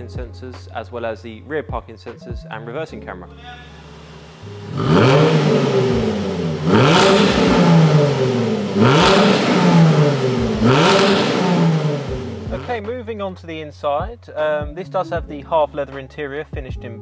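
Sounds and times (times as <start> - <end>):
car engine revving: 3.6 - 12.8.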